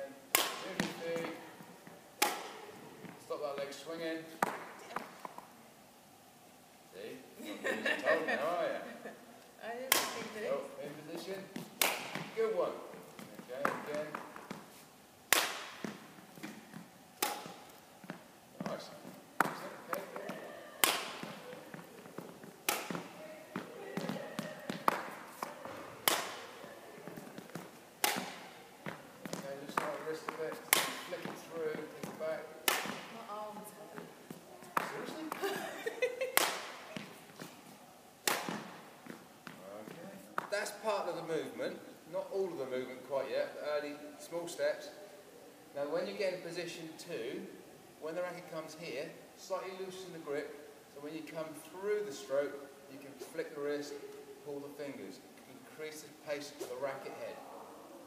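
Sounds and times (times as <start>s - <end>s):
racket hitting shuttlecock: 0.3s - 1.4s, 2.2s - 2.7s, 4.4s - 5.4s, 9.9s - 10.4s, 11.6s - 12.4s, 15.3s - 18.7s, 19.4s - 33.2s, 36.3s - 37.5s, 38.2s - 39.6s.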